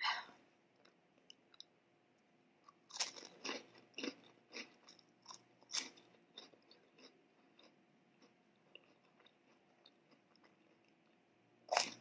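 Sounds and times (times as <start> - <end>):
crunchy chewing of snack: 2.6 - 12.0.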